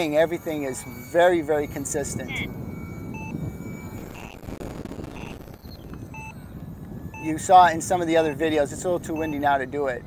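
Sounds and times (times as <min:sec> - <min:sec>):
faint electronic beep: 0:00.0 - 0:10.0
wind rumbling on microphone: 0:00.0 - 0:10.0.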